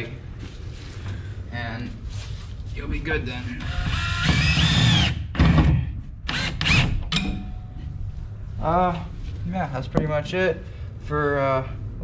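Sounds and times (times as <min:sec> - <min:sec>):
cordless screw gun driving screw: 0:03.6 - 0:05.2, 0:06.3 - 0:07.2.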